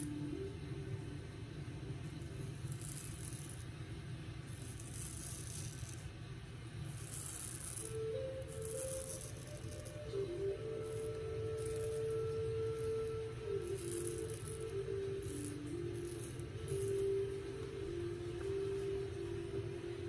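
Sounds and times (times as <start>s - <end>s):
razor scraping stubble: 2.2s - 6.2s, 6.8s - 17.6s.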